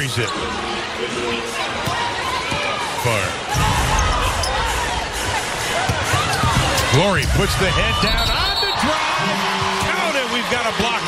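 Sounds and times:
arena crowd noise: 0.0 - 11.0
music: 3.5 - 7.6.

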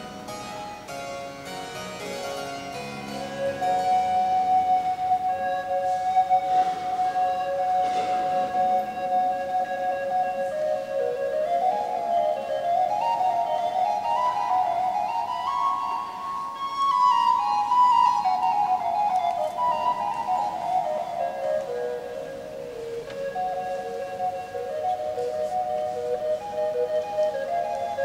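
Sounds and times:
flute melody: 0.0 - 28.0
harpsichord accompaniment: 0.0 - 28.0.

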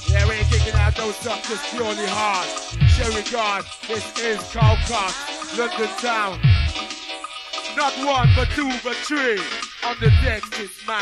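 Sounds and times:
deep bass booms falling in pitch: 0.0 - 1.0, 2.7 - 3.1, 4.6 - 4.9, 6.4 - 6.8, 8.2 - 8.6
hardcore rave breakbeat music: 0.0 - 11.0
sliding vocal-like melody: 0.1 - 6.8, 7.8 - 11.0.

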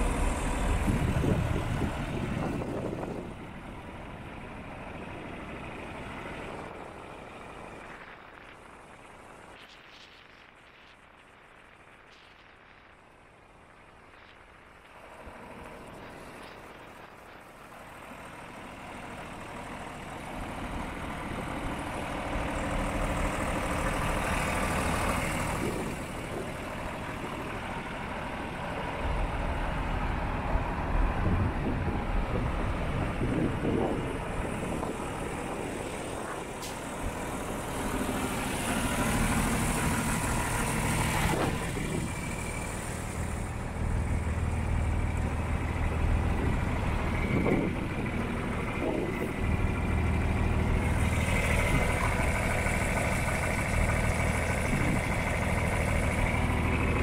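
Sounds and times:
tractor diesel engine idling: 0.0 - 7.8, 15.0 - 57.0.

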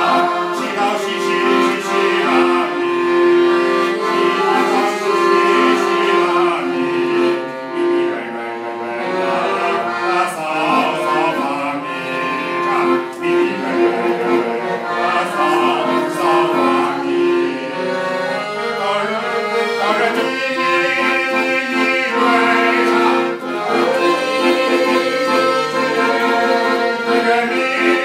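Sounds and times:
accordion playing a ballad: 0.0 - 28.0.

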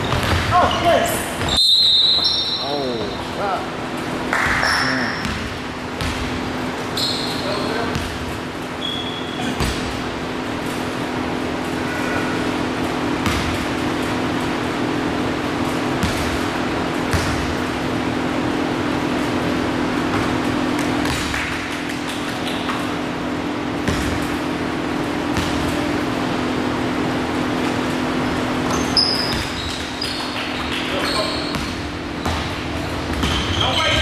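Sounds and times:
basketball bouncing on hardwood: 0.0 - 0.5, 9.5 - 9.9, 13.2 - 13.6, 17.1 - 17.5, 23.8 - 24.3, 31.5 - 33.6
steady low hum: 0.0 - 34.0.

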